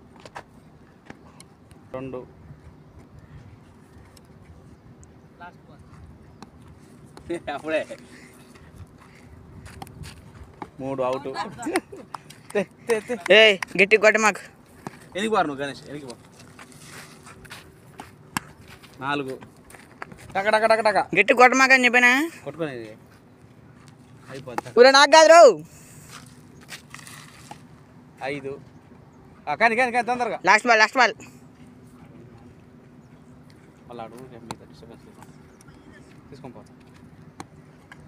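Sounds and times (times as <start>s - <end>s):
quiet outdoor background: 0.0s - 38.0s.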